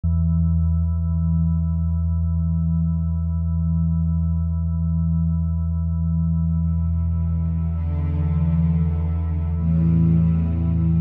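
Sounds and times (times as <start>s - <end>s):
held synthesizer chord: 0.0s - 11.0s.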